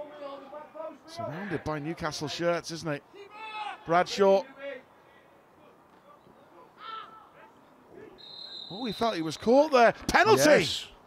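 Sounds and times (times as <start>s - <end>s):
open-air field ambience: 0.0s - 11.0s
faint shout: 3.2s - 3.9s, 6.8s - 8.2s
referee's whistle: 8.2s - 9.7s.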